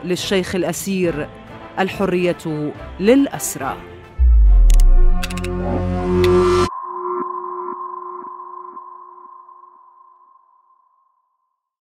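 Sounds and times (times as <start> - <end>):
loud music: 4.2 - 6.7
pulsing electronic ringing tone: 4.2 - 10.8.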